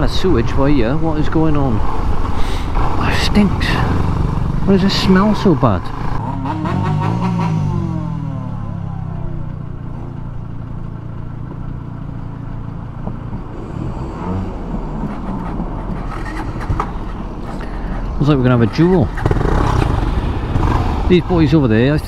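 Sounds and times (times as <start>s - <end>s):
motorcycle engines idling: 0.0s - 13.6s, 14.5s - 22.0s.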